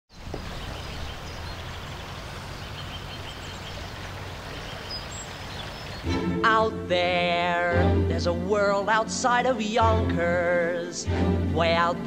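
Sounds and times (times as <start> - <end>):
faint bird chirps: 0.1 - 6.1
background hiss: 0.1 - 10.8.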